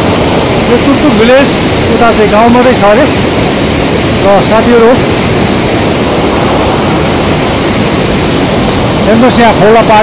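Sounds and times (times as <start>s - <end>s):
river rushing over rocks: 0.0s - 10.0s.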